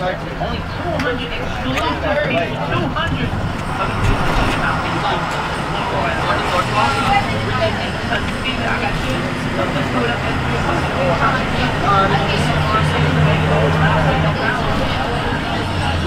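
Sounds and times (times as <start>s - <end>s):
bus diesel engine running: 0.0s - 16.0s
passengers chattering: 0.0s - 16.0s
road noise: 0.0s - 16.0s.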